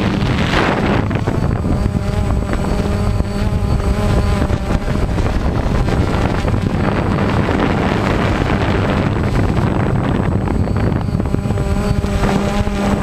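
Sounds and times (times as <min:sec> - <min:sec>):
quadcopter motors humming: 0:00.0 - 0:13.0
wind rumbling on microphone: 0:00.0 - 0:13.0.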